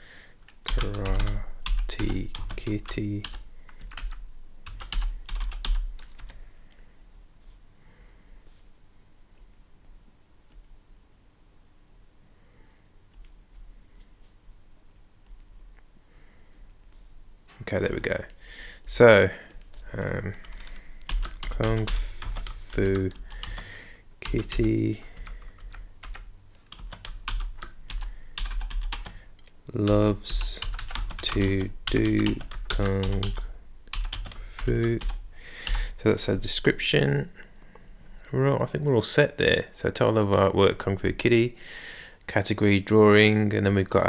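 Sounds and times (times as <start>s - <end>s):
typing on computer keyboard: 0.5s - 6.4s, 20.3s - 23.6s, 24.2s - 29.2s, 30.5s - 35.8s.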